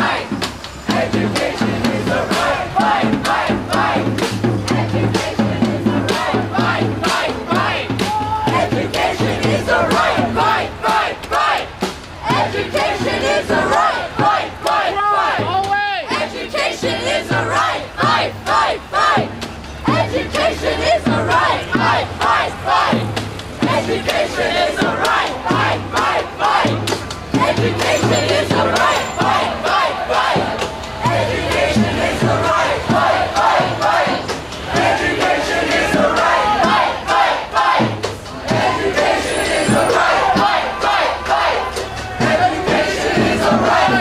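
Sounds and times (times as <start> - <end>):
crowd chanting and shouting: 0.0 - 44.0.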